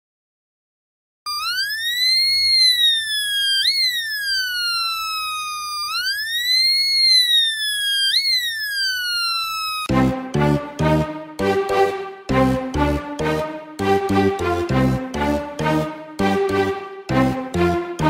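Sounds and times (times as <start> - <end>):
electronic siren tone: 1.3 - 9.9
rhythmic music: 9.9 - 18.0.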